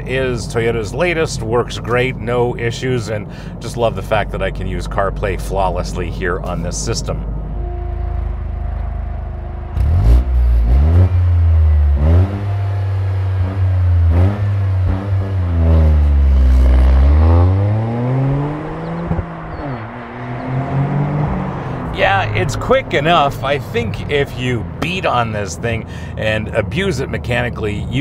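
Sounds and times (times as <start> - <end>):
car engine accelerating hard: 8.2 - 27.3.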